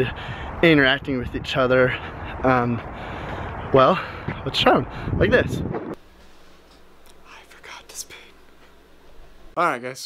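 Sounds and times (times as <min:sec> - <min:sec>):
low electrical hum: 0:06.0 - 0:09.8
faint whispering voice: 0:07.2 - 0:08.4.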